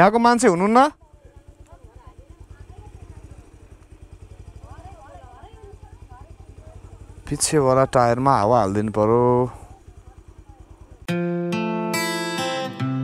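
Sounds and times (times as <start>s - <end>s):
motorcycle engine running: 0.0s - 12.8s
faint voices: 1.0s - 11.1s.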